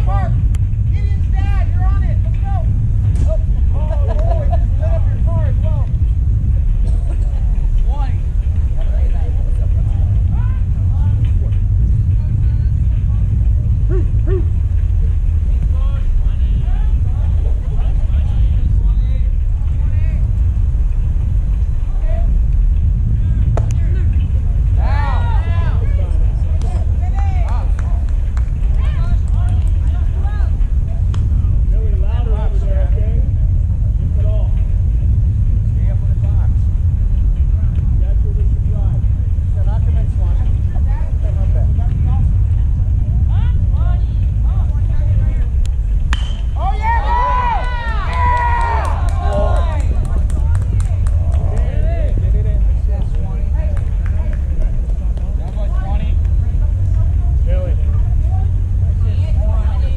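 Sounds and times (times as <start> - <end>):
steady low rumble: 0.0 - 59.9
players shouting: 46.2 - 50.2
loud high shout: 46.6 - 49.8.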